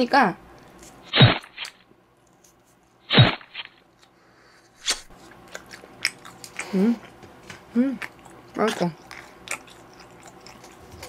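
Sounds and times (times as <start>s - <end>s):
faint chewing: 3.6s - 11.0s
mouth smack: 4.8s - 5.1s.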